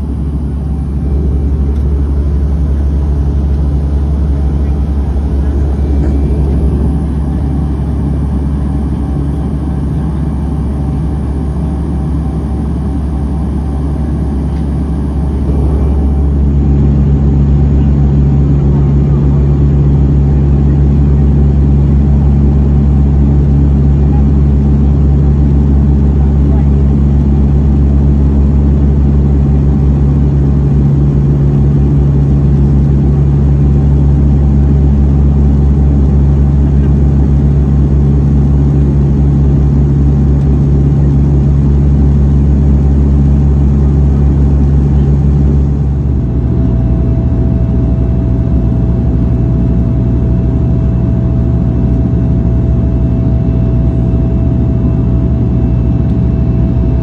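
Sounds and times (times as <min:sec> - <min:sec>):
turboprop cabin drone: 0:00.0 - 0:57.0.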